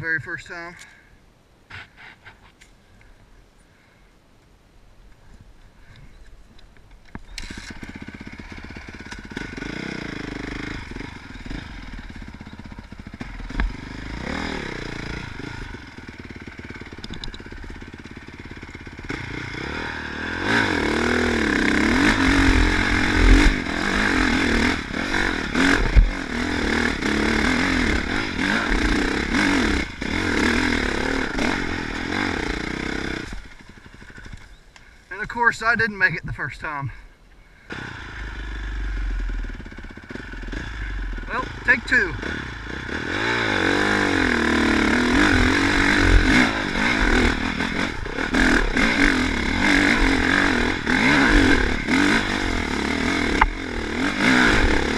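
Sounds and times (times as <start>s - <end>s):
dirt bike engine revving: 7.4s - 35.3s, 37.6s - 54.9s.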